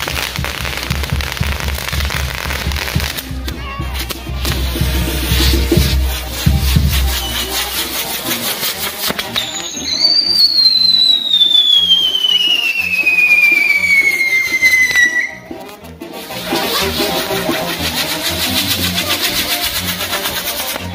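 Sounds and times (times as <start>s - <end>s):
whistling firework: 0.0s - 3.2s, 6.2s - 15.5s
fireworks crackling sparks: 0.0s - 20.9s.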